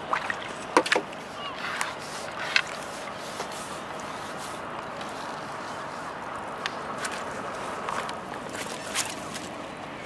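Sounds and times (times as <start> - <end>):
water splashing and dripping: 0.0 - 1.2.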